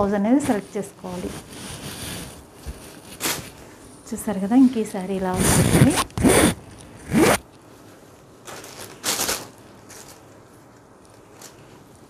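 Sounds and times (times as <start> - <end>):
fabric rustling: 0.0 - 3.9.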